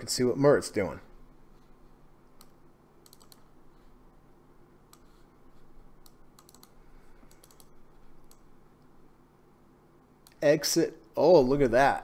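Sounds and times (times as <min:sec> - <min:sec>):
low steady hum: 0:00.0 - 0:12.0
computer keyboard clicking: 0:02.4 - 0:03.5, 0:06.0 - 0:08.5.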